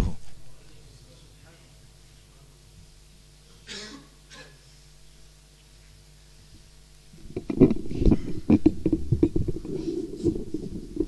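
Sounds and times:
faint steady hum: 0.0 - 11.0
knocks and rubbing on microphone: 7.2 - 11.0.

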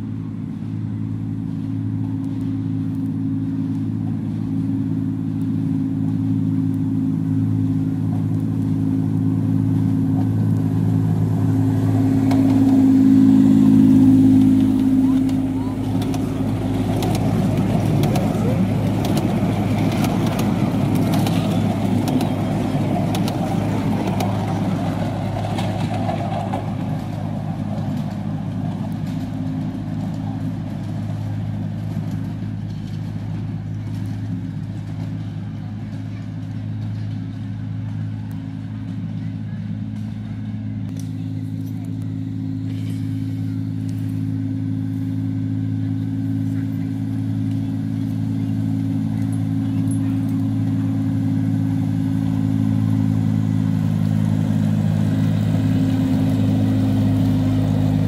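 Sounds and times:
carriages rumbling over track: 0.0 - 58.0
diesel locomotive engine running: 0.0 - 58.0.

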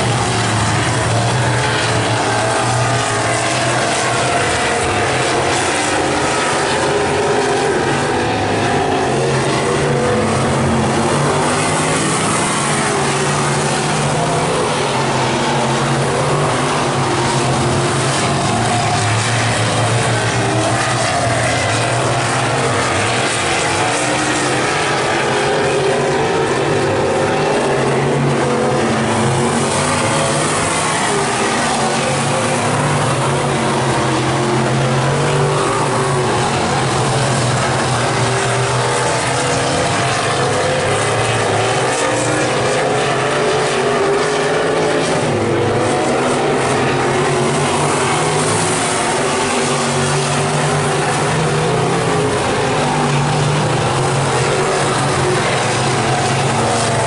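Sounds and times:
race car engines circling: 0.0 - 57.0.

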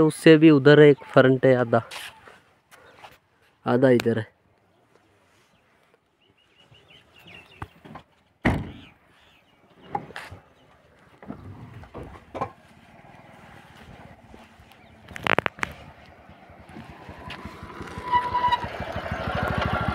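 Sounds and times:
knocks and bumps: 11.2 - 12.6
motorcycle engine running: 13.7 - 19.9.

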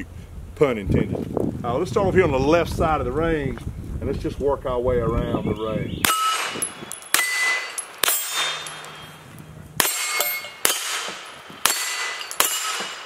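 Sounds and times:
gunshots: 6.0 - 9.1, 9.8 - 13.0
steel target ringing: 6.0 - 13.0.

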